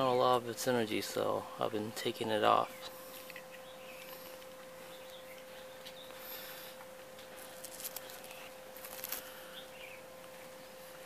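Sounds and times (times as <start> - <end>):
faint hum: 0.0 - 11.0
faint wavering chirp: 2.6 - 6.8, 9.3 - 10.2.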